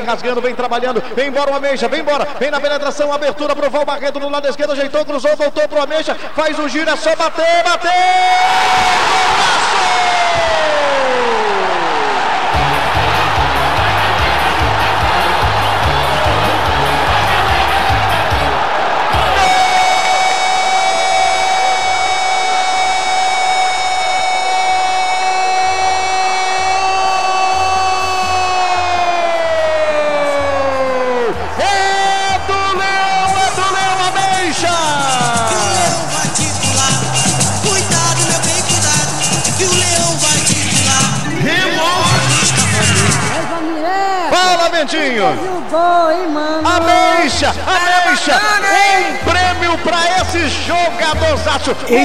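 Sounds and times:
radio narrator shouting goal: 0.0s - 12.4s, 19.1s - 52.0s
crowd roaring: 7.2s - 52.0s.

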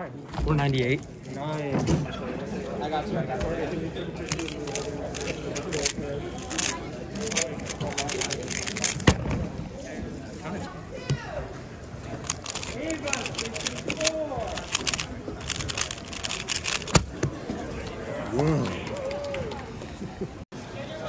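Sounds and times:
faint voices chattering: 0.0s - 21.0s
plastic puzzle cube clicking: 4.3s - 9.1s, 12.2s - 17.0s.

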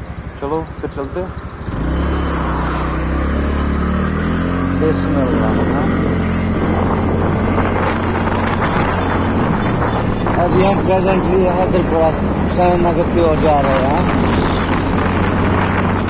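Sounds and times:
motorbike engine accelerating: 0.0s - 16.0s.

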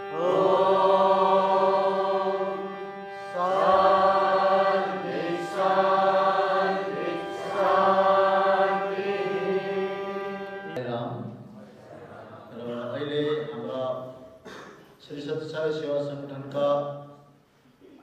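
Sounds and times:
steady drone: 0.0s - 10.8s.

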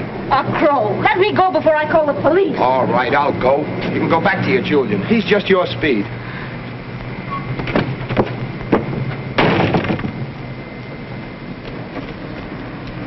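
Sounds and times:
door shutting with a bang: 7.3s - 10.2s.

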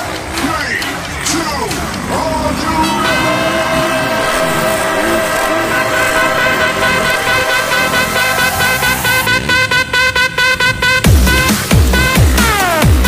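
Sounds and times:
electronic music with synth notes: 0.0s - 13.0s
motorcycle engines revving: 0.0s - 13.0s.

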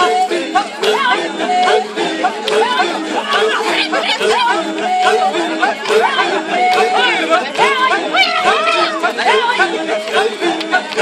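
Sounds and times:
group of voices chanting: 0.0s - 11.0s.

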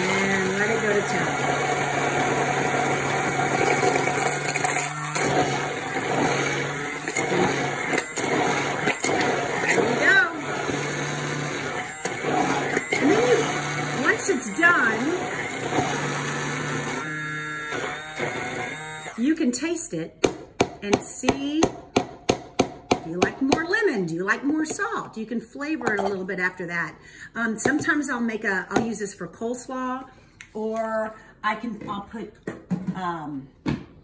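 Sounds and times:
immersion blender motor humming: 0.0s - 19.4s.

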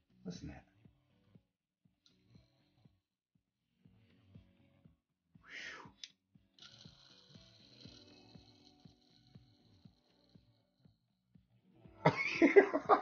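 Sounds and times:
toy car wheel whooshing: 5.6s - 11.0s
spinning wheel whirring and ticking: 5.9s - 11.0s.

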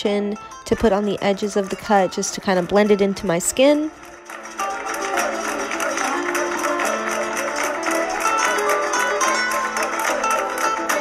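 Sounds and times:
music with quick plucked notes: 0.0s - 11.0s.

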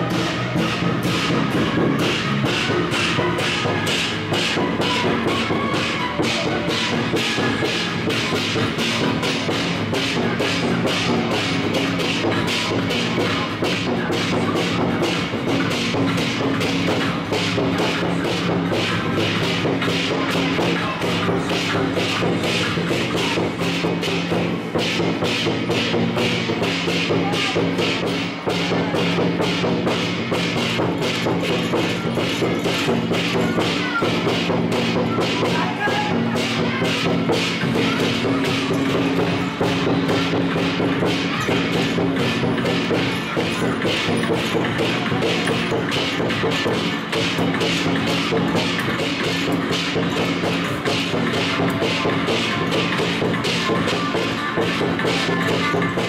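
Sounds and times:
percussion music with sharp strikes: 0.0s - 56.0s.

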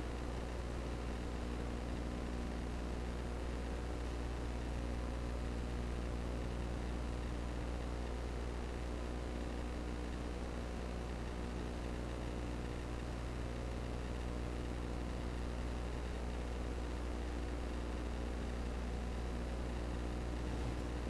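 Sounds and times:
constant hiss: 0.0s - 21.0s
low electrical hum: 0.0s - 21.0s.

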